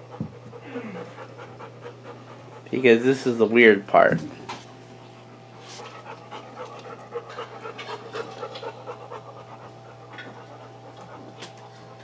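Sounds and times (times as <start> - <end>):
dog panting: 0.0 - 3.5, 4.6 - 12.0
steady low hum: 0.0 - 12.0.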